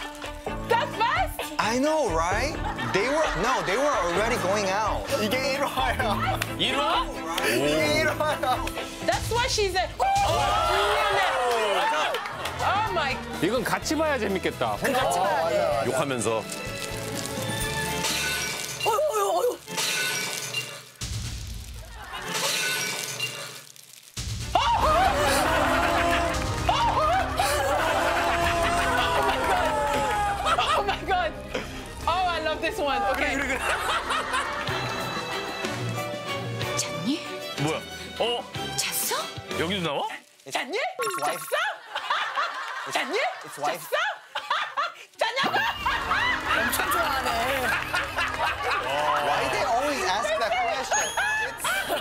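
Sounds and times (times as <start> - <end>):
background music: 0.0 - 44.1, 45.4 - 52.0
people laughing and exclaiming: 2.4 - 8.2, 9.4 - 13.2, 14.8 - 15.9, 21.8 - 22.6, 24.5 - 36.0, 41.1 - 52.0
noisy crash: 21.0 - 23.0, 24.1 - 25.6.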